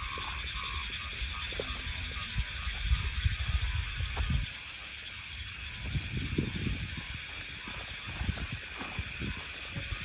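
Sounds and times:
footsteps on muddy path: 0.0s - 10.0s
frogs croaking: 0.0s - 10.0s.

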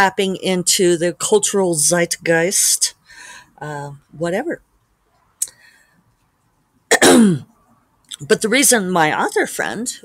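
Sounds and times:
woman clearing her throat: 6.9s - 7.5s.

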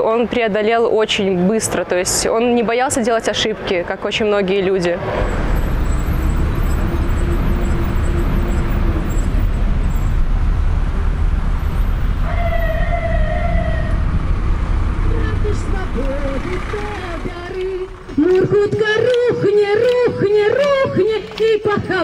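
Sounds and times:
city traffic rumble: 0.0s - 22.0s
horn-like tone: 6.2s - 9.5s.

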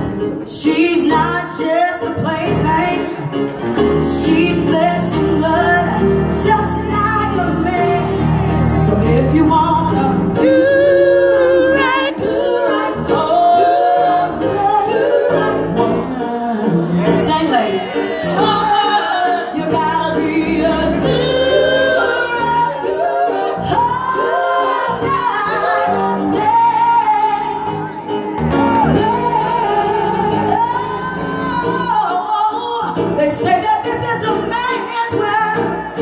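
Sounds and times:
live band playing: 0.0s - 36.0s
woman singing soul: 0.4s - 36.0s.

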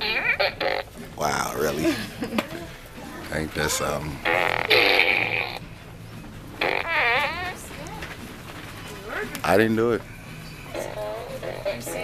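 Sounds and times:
toy playing fart noise: 0.0s - 1.0s, 4.2s - 5.6s, 6.6s - 7.6s.

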